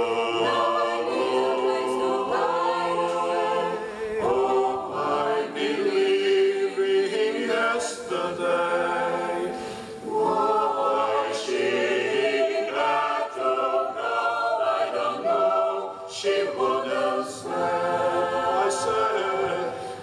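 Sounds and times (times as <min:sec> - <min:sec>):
mixed choir singing a cappella: 0:00.0 - 0:20.0.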